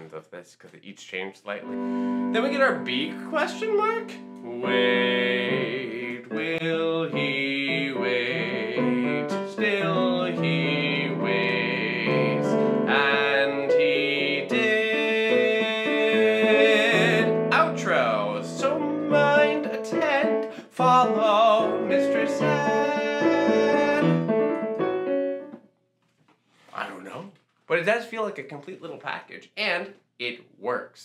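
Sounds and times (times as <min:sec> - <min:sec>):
piano accompaniment: 0:01.6 - 0:25.7.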